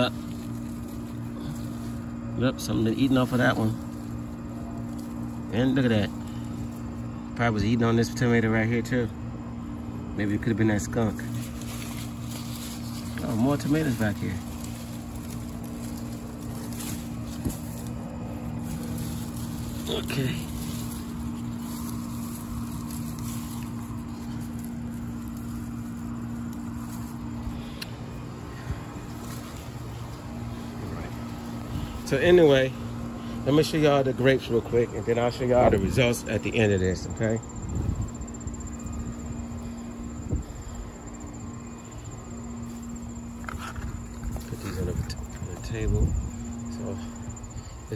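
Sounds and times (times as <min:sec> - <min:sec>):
insects trilling: 0:00.0 - 0:47.9
motor humming: 0:00.0 - 0:47.9
handling and walking noise: 0:11.1 - 0:36.6, 0:37.7 - 0:47.2.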